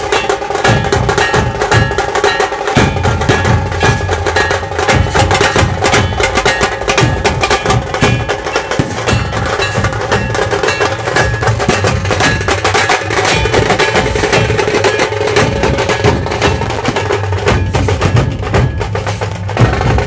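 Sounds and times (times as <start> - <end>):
large barrel drums beaten: 0.0 - 20.0
small drums struck with sticks: 0.0 - 20.0.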